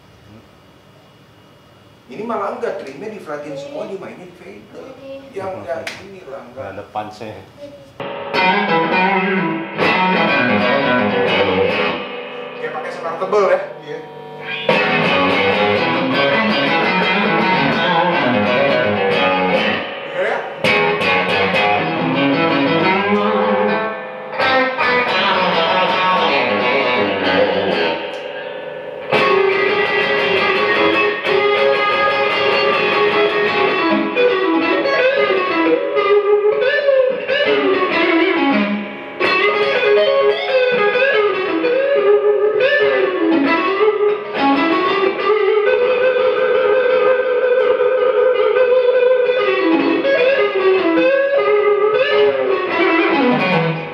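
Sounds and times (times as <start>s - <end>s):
electric guitar blues lead: 7.6s - 53.9s.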